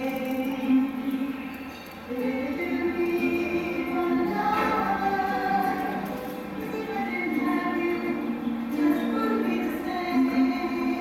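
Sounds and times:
ukulele accompaniment: 0:00.0 - 0:11.0
women singing slow song: 0:00.0 - 0:11.0.

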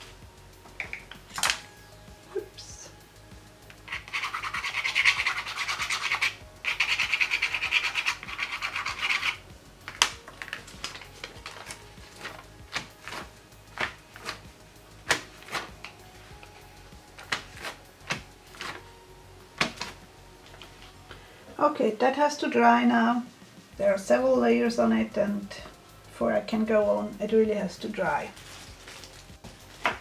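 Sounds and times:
tool scrubbing across paper: 0:03.9 - 0:09.4
paper handling clicks and taps: 0:09.9 - 0:14.4, 0:15.0 - 0:16.0, 0:17.2 - 0:18.8, 0:19.6 - 0:20.7.

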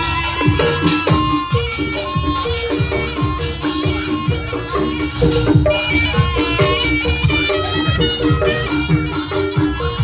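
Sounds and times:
drum strokes: 0:00.0 - 0:10.0
nasal reed shawm melody: 0:00.0 - 0:10.0.

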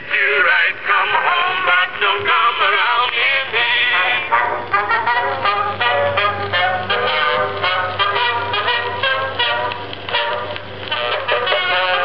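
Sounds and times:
man singing on phonograph record: 0:00.0 - 0:08.6, 0:11.1 - 0:12.0.

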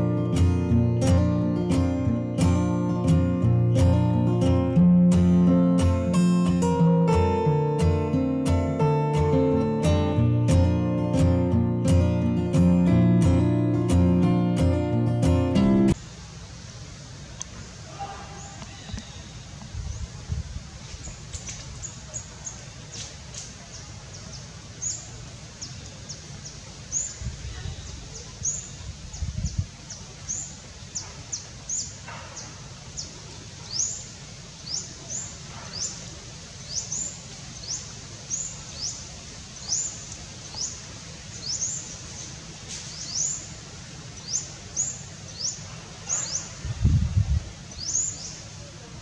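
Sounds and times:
steady background hiss: 0:00.0 - 0:49.0
bird chirping: 0:21.0 - 0:43.5, 0:44.2 - 0:46.6, 0:47.7 - 0:48.5.

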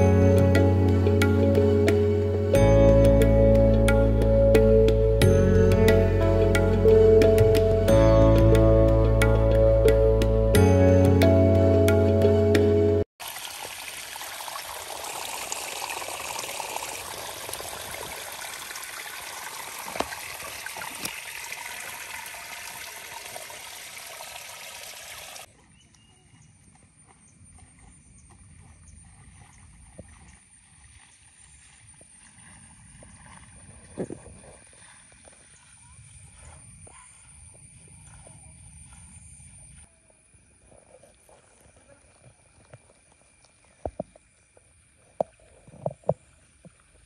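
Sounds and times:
background music: 0:00.0 - 0:13.0
running water: 0:00.0 - 0:25.6
faint outdoor ambience: 0:00.0 - 0:47.0.

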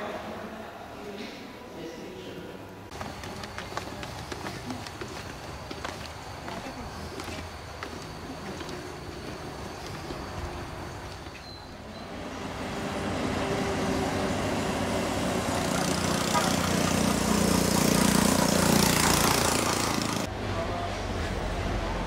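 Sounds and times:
motor vehicle running: 0:02.9 - 0:22.0.

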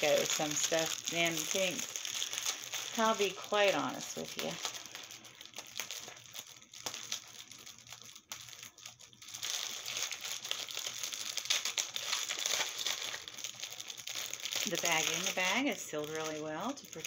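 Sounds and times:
plastic bags crinkling: 0:00.0 - 0:17.0.

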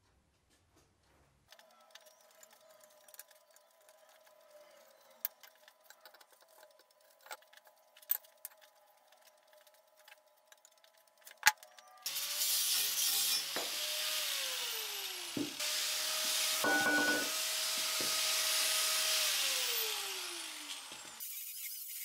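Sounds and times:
angle grinder cutting steel: 0:12.0 - 0:22.0.

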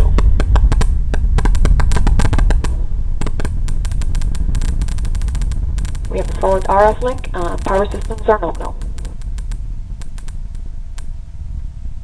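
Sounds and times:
distant rocket engine rumble: 0:00.0 - 0:12.0.

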